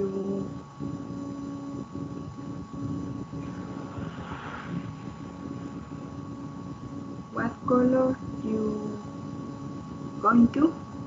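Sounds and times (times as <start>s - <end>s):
constant hum: 0.0s - 11.0s
low rumble: 0.0s - 11.0s.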